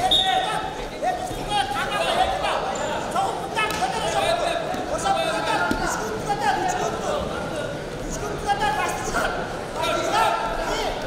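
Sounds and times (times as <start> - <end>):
people shouting in a hall: 0.0 - 11.0.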